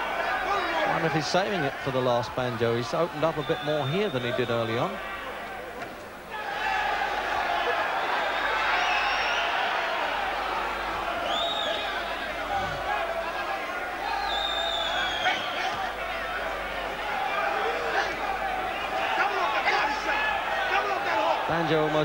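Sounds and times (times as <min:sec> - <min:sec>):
crowd shouting and cheering: 0:00.0 - 0:22.0.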